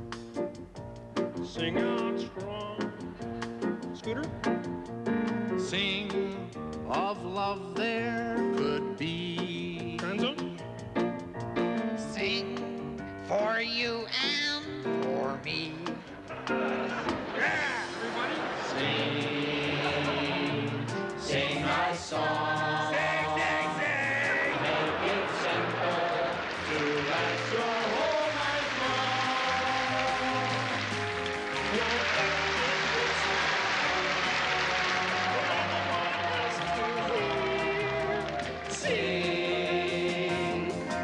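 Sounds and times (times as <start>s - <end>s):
piano accompaniment: 0.0s - 41.0s
voices singing together: 16.1s - 41.0s.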